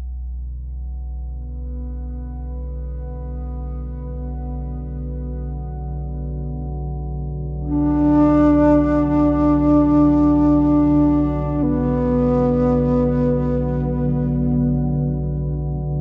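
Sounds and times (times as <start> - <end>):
alto flute long notes: 7.7 - 15.6.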